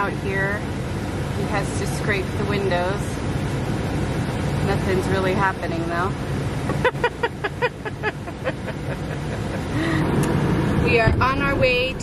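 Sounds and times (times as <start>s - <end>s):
car engine rumble: 0.0s - 12.0s
woman laughing: 6.7s - 10.0s.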